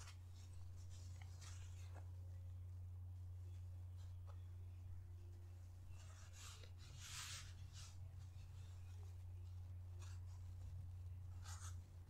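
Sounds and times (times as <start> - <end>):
faint scratchy rustles: 0.0 - 4.6
low hum: 0.0 - 12.0.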